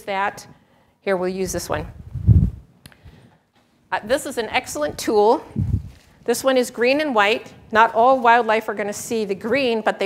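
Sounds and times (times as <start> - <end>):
muffled microphone handling rumble: 1.4 - 2.7, 4.7 - 6.0.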